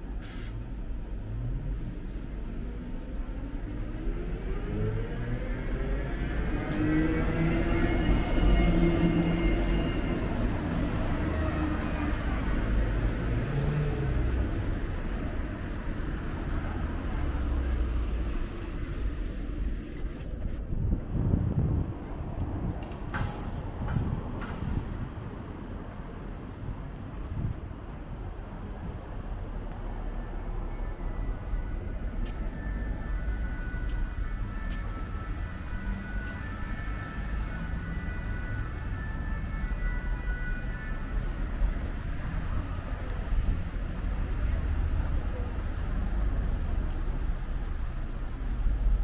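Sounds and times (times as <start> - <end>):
street traffic: 0.0 - 49.0.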